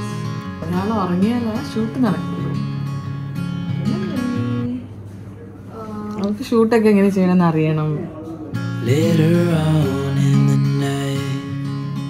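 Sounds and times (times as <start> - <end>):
acoustic guitar strumming: 0.0 - 5.0, 8.5 - 12.0.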